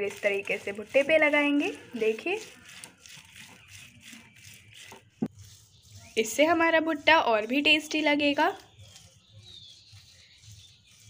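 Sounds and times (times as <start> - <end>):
lemon rubbing on corn cob: 0.0 - 11.0.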